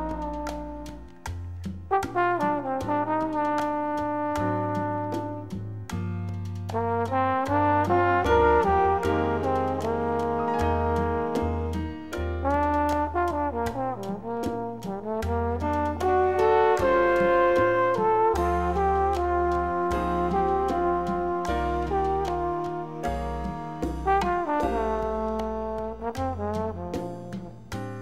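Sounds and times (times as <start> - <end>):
trumpet and trombone melody: 0.0 - 5.6, 6.7 - 28.0
walking bass line: 4.1 - 28.0
percussion hits: 8.6 - 19.3.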